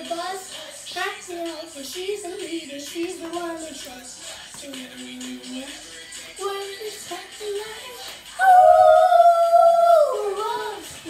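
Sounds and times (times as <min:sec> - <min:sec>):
person howling like a wolf: 0:08.4 - 0:10.4.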